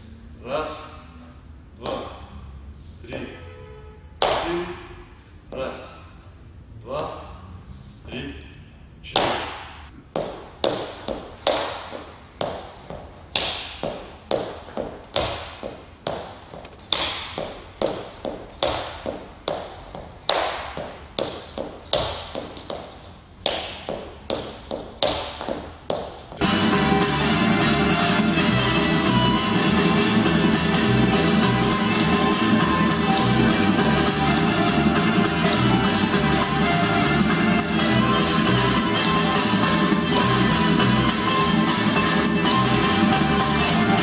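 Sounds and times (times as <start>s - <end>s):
shoes tapping on wooden floor: 10.1s - 26.4s
music: 26.4s - 44.0s.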